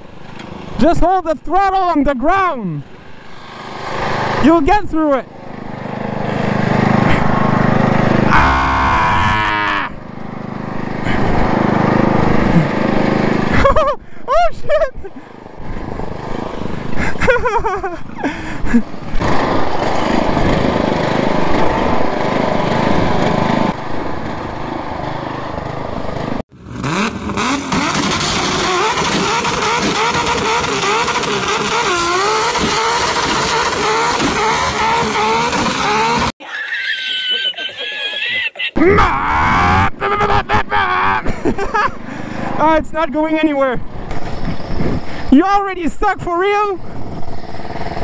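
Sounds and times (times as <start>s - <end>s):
tire spinning in mud: 0.0s - 14.9s, 15.5s - 45.6s, 46.5s - 48.0s
lawn mower engine under load: 0.0s - 48.0s.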